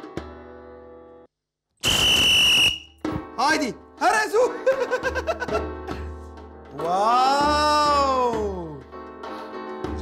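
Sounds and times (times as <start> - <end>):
music: 0.0 - 1.3, 2.6 - 10.0.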